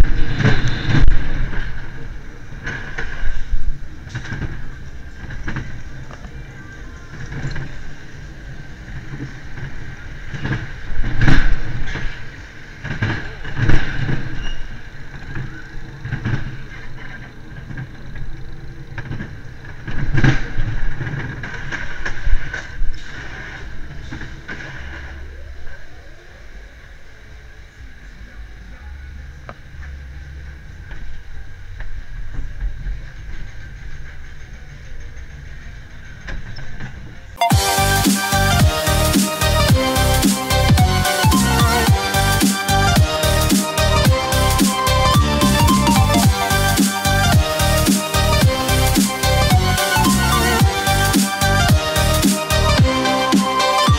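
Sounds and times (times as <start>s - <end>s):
roller coaster car jolts: 0.0s - 25.5s.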